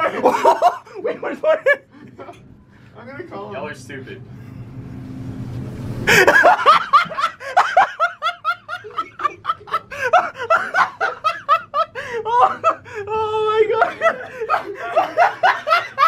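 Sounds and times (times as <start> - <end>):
group of people laughing: 0.0 - 2.5, 6.1 - 16.0.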